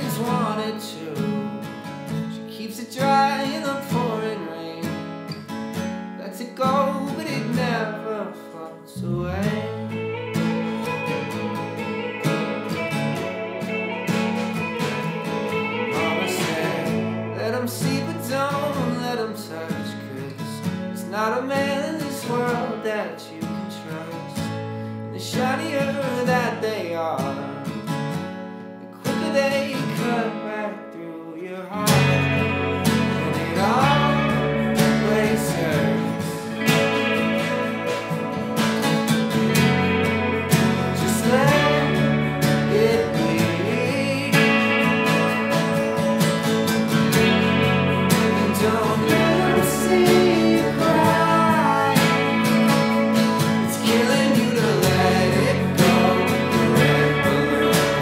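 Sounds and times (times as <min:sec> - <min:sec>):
sparse guitar passage: 0:09.0 - 0:19.4, 0:31.9 - 0:58.0
rock band playing live: 0:09.8 - 0:17.5, 0:31.9 - 0:58.0.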